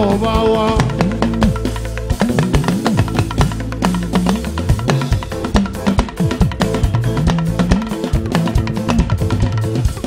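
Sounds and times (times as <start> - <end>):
bass line: 0.0 - 10.0
drum kit beat: 0.0 - 10.0
live band playing upbeat music: 0.0 - 10.0.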